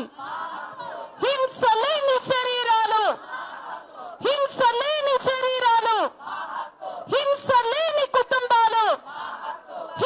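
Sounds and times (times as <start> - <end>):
crowd noise: 0.0 - 10.0
woman shouting a slogan: 1.2 - 3.2, 4.2 - 6.2, 7.0 - 9.1.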